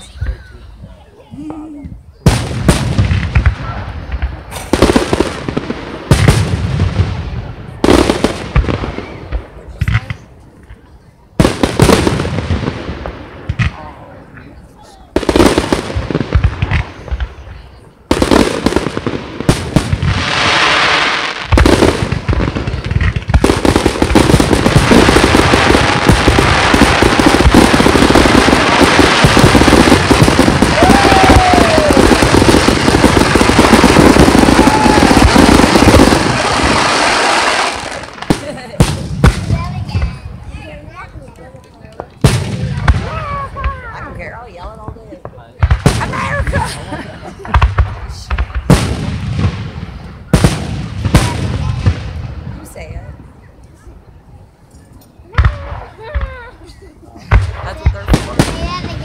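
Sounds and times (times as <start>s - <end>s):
fireworks booming and crackling: 0.0s - 59.0s.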